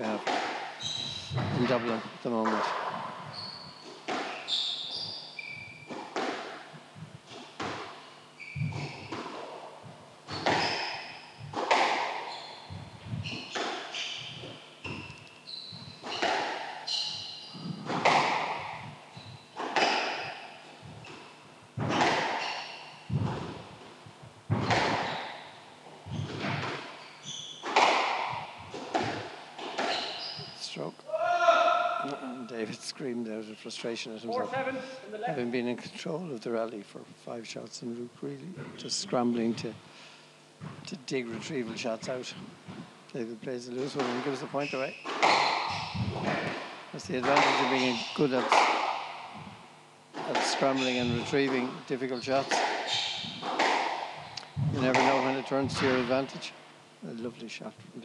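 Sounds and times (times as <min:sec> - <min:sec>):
shoes squeaking on wooden floor: 0:00.0 - 0:30.8, 0:43.8 - 0:49.6, 0:50.2 - 0:56.5
squash ball thwacks: 0:00.2 - 0:01.8, 0:10.3 - 0:12.2, 0:17.6 - 0:18.9, 0:19.6 - 0:21.2, 0:21.8 - 0:23.6, 0:24.5 - 0:25.4, 0:27.6 - 0:30.0, 0:45.1 - 0:51.7, 0:52.4 - 0:56.2
player screaming: 0:31.1 - 0:32.2.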